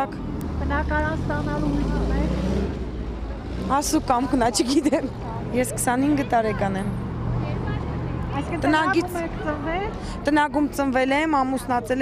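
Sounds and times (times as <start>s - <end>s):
vehicle engine rumbling: 0.0s - 12.0s.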